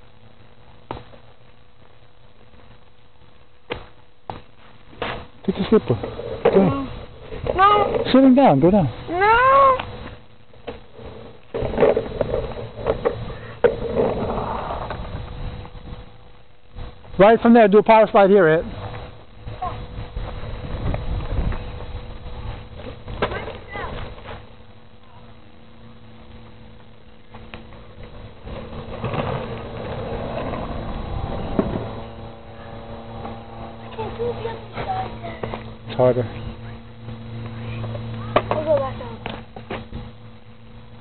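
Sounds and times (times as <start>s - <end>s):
skateboard wheels rolling on asphalt: 0.0s - 41.0s
skateboard clacks: 27.3s - 32.4s, 38.1s - 39.9s.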